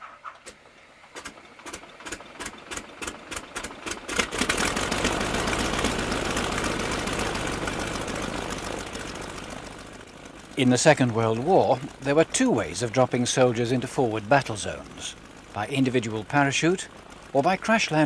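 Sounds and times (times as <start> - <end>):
piston engine starting: 0.0 - 18.0.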